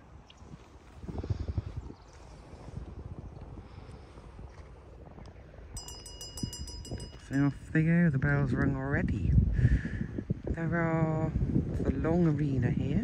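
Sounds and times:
bell ringing metallic strikes: 0:05.8 - 0:07.5.

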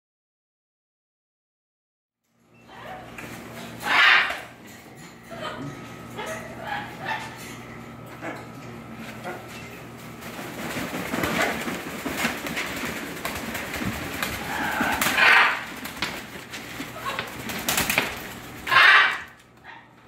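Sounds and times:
parrot wings flapping: 0:08.6 - 0:19.8.

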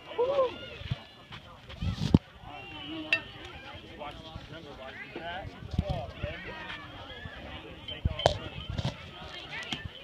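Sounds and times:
spectators chatting: 0:00.0 - 0:10.0.

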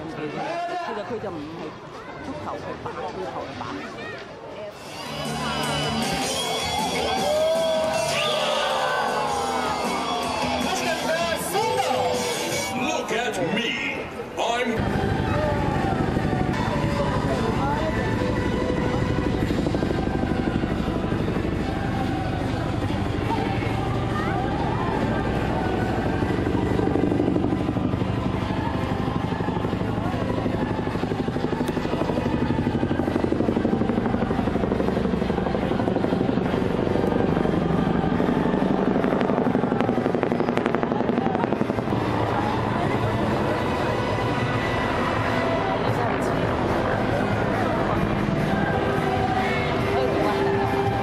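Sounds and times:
background music: 0:04.8 - 0:51.0
helicopter rotor beating: 0:14.8 - 0:51.0.

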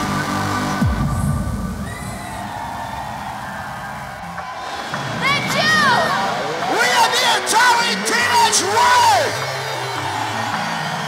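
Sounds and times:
hall and crowd noise: 0:00.0 - 0:11.0.

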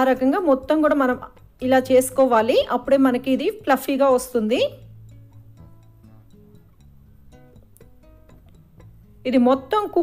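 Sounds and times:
plucked acoustic guitar music: 0:04.8 - 0:09.3.

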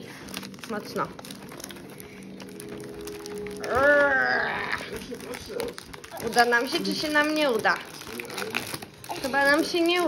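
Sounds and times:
person straining hum and cry: 0:03.6 - 0:05.0.

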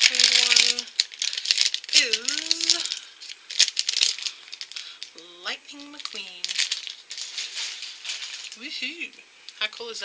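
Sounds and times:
plastic wrapper crinkling: 0:00.0 - 0:10.0.

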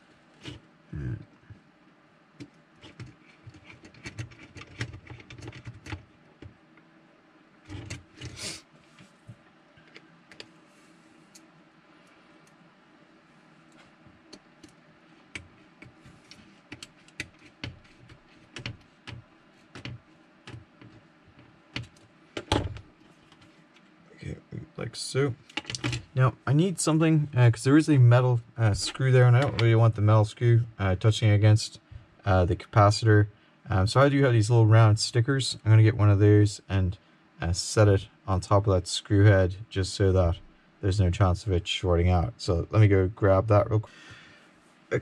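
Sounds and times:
faint steady hum: 0:00.0 - 0:45.0.

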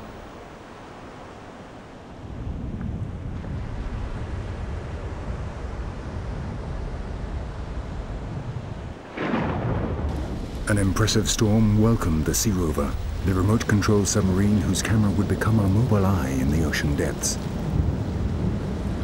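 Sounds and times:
rolling thunder rumble: 0:02.2 - 0:19.0.

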